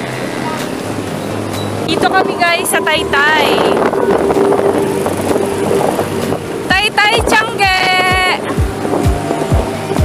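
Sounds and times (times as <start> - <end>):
low engine hum: 0.0 - 10.0
road traffic rumble and hiss: 0.0 - 10.0.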